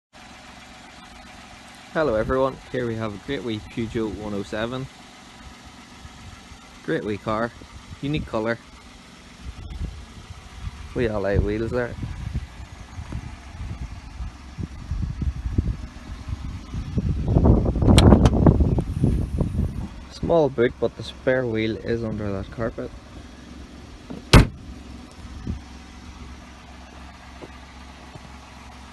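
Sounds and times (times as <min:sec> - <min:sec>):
car engine idling: 0:00.1 - 0:28.9
phone handling rumble: 0:17.8 - 0:18.9
tailgate latch clicks: 0:17.9 - 0:18.4, 0:24.1 - 0:24.6
man speaking: 0:20.1 - 0:22.9.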